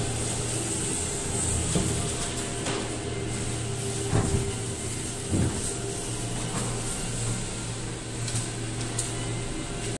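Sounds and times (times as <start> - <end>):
low mechanical hum with hiss: 0.0 - 9.9.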